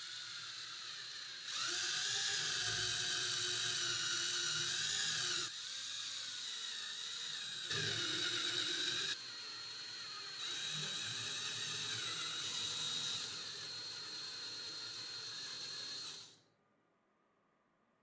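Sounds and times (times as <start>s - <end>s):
power drill boring into wood: 0.0s - 16.4s.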